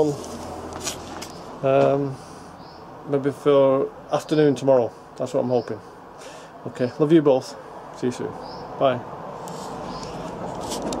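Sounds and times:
camera handling rustle: 0:00.2 - 0:01.4, 0:09.4 - 0:11.0.

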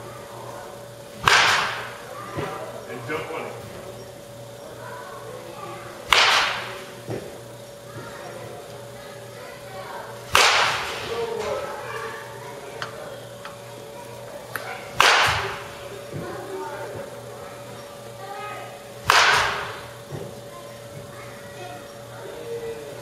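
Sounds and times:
steady hum: 0:00.0 - 0:23.0
baseball bat cracking balls: 0:01.2 - 0:02.6, 0:06.0 - 0:07.4, 0:10.3 - 0:11.6, 0:14.5 - 0:16.2, 0:19.0 - 0:20.4.

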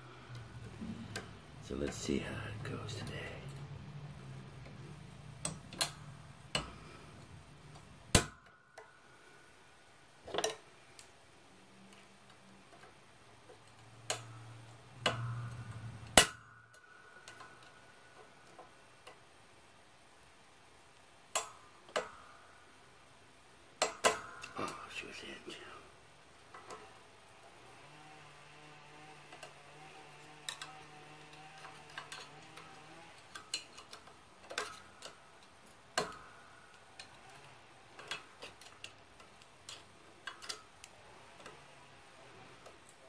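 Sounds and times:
pliers clicking on metal ring: 0:05.4 - 0:08.9, 0:13.6 - 0:17.8, 0:21.3 - 0:22.3, 0:28.9 - 0:41.6.

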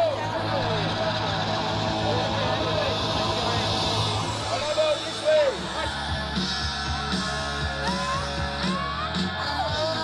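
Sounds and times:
crowd shouting: 0:00.0 - 0:10.0
rushing background noise: 0:00.0 - 0:10.0.

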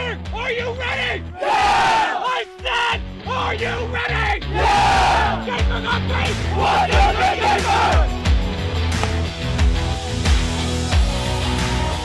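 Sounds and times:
background music with bass line: 0:00.0 - 0:12.0
teenagers yelling and cheering: 0:01.4 - 0:08.1.

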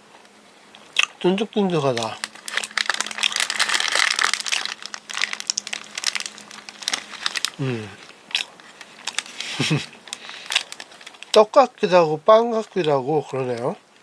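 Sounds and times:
close-up crinkling and crackling: 0:01.7 - 0:14.0
person humming mm: 0:07.6 - 0:08.0.

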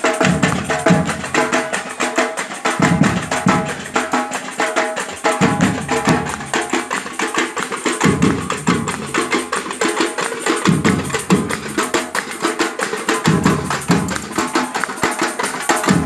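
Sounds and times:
deep drum beats: 0:00.0 - 0:01.9, 0:02.7 - 0:07.2, 0:08.0 - 0:09.5, 0:10.6 - 0:12.4, 0:13.2 - 0:14.6
samba percussion group: 0:00.0 - 0:16.0
bass drum beats: 0:00.2 - 0:01.7, 0:02.8 - 0:04.0, 0:05.3 - 0:06.7.

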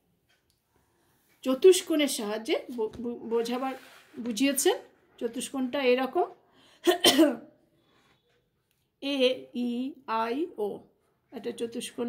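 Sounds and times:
woman clearing her throat: 0:06.9 - 0:07.5.

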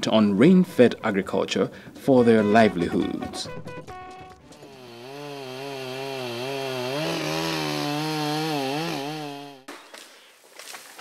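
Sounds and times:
chainsaw running: 0:04.5 - 0:09.7.

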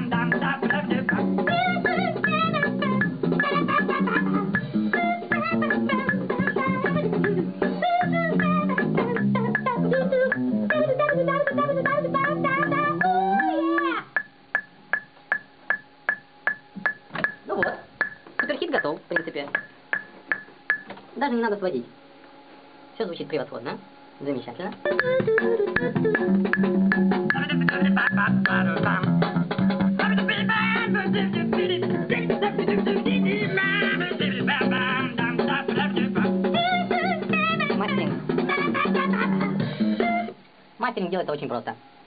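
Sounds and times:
steady ticking clicks: 0:09.2 - 0:17.4, 0:18.0 - 0:20.9
person singing over a band: 0:30.0 - 0:37.8.

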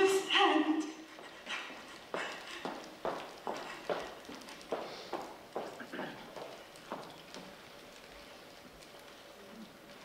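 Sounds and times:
heeled footsteps on stage floor: 0:01.1 - 0:08.2.

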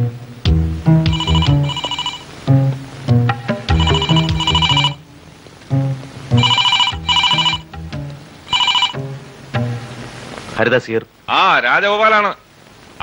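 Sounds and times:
telephone bell ringing: 0:01.1 - 0:02.3, 0:03.7 - 0:05.0, 0:06.4 - 0:07.7, 0:08.5 - 0:09.0.

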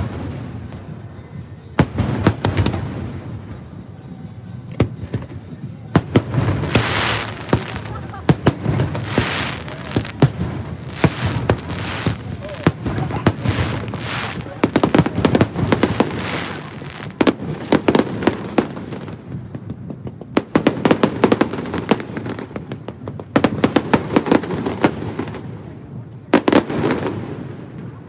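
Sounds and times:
fireworks bangs and crackles: 0:00.0 - 0:28.0.

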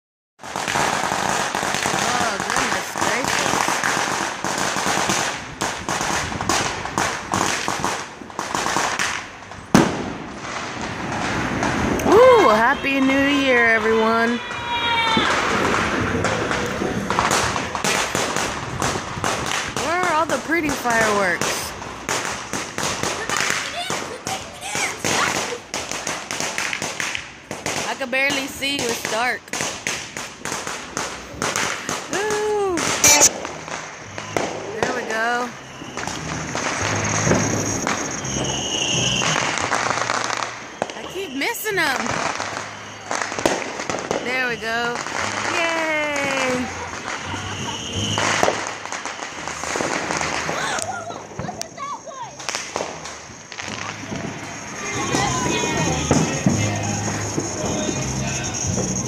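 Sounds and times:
loud firework bang: 0:00.4 - 0:32.0, 0:32.8 - 0:41.2, 0:41.8 - 0:59.0
firecrackers crackling: 0:00.4 - 0:59.0.

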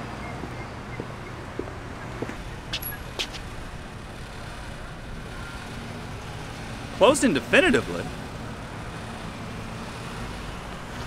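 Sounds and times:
road traffic rumble: 0:00.0 - 0:11.0.

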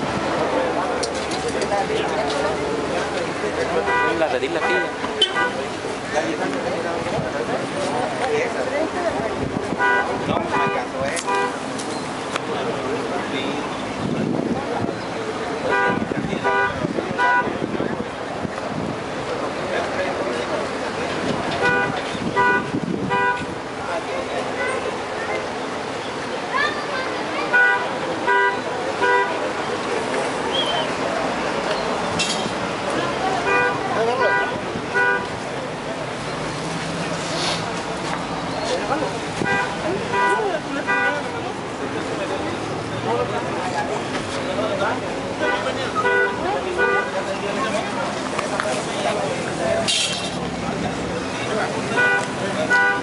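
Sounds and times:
crowd chatter: 0:00.0 - 0:53.0
road traffic: 0:00.0 - 0:53.0
voices: 0:00.0 - 0:53.0
vehicle horn beeps: 0:03.9 - 0:05.6.

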